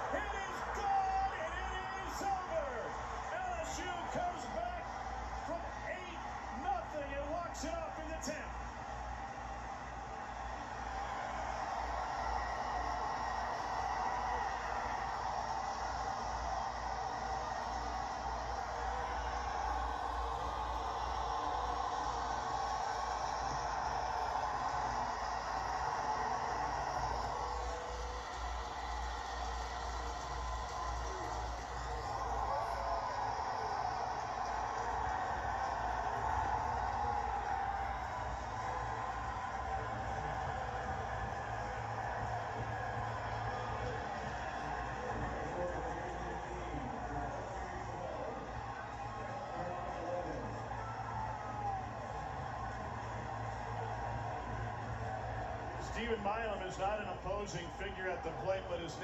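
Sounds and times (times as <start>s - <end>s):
stadium crowd cheering on television: 0.0s - 59.0s.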